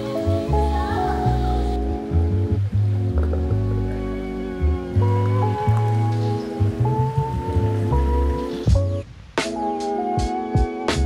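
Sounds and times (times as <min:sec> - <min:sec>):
background music with held chords: 0:00.0 - 0:11.0.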